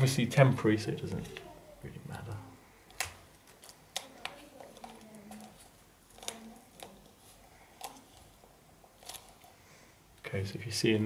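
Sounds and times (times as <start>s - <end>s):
duct tape crinkling: 2.9s - 9.5s.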